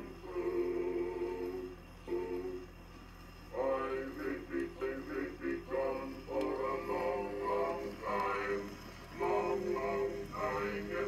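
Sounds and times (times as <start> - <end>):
phonograph record of men singing: 0.0 - 2.8, 3.5 - 11.0.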